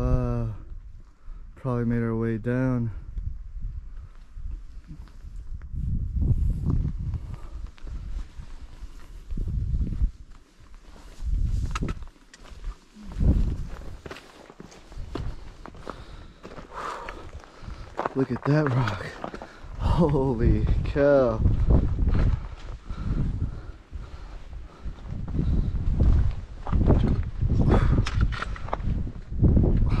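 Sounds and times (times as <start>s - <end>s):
wind rumbling on microphone: 0.0s - 14.2s, 14.8s - 30.0s
footsteps on rock and gravel: 6.5s - 30.0s.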